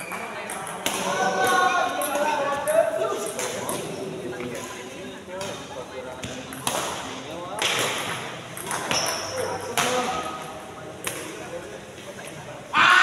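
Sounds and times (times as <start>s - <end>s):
players' voices: 0.0s - 13.0s
rackets hitting shuttlecock: 0.1s - 2.1s, 6.2s - 10.2s.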